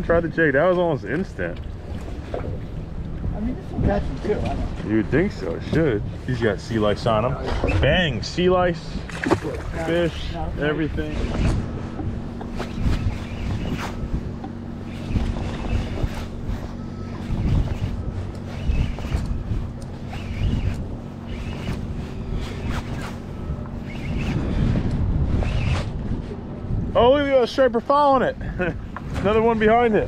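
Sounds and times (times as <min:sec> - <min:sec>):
wind buffeting microphone: 0:00.0 - 0:30.0
boat engine idling: 0:08.5 - 0:24.2.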